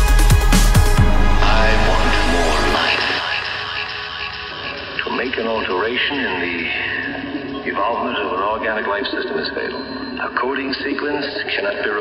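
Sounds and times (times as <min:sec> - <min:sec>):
thin breakbeat music bed: 0:00.0 - 0:05.7
spoken vocal sample: 0:01.0 - 0:03.9, 0:04.5 - 0:12.0.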